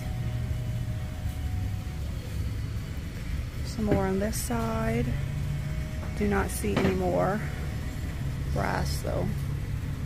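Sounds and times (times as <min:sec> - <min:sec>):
faint steady hum: 0:00.0 - 0:10.0
low room rumble: 0:00.0 - 0:10.0.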